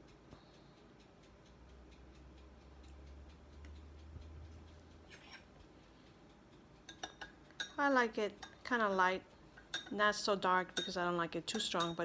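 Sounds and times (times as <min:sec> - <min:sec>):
spoon stirring in glass mug: 0:05.1 - 0:05.5, 0:06.9 - 0:07.8, 0:09.6 - 0:10.0, 0:10.8 - 0:12.0.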